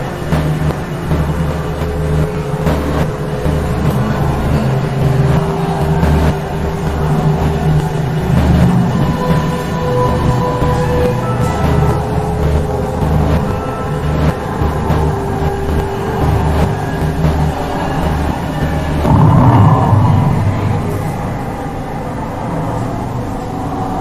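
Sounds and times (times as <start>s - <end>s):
low throbbing pulse: 0.0s - 22.6s
layered drones: 0.0s - 24.0s
rushing surge: 19.0s - 22.4s.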